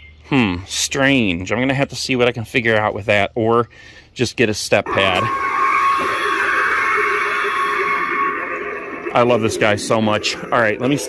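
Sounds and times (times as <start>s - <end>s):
long high-pitched cry: 4.9s - 9.3s.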